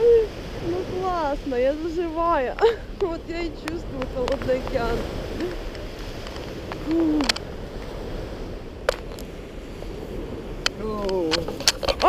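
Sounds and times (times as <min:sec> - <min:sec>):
sea surf: 0:00.0 - 0:12.0
wind noise: 0:00.0 - 0:12.0.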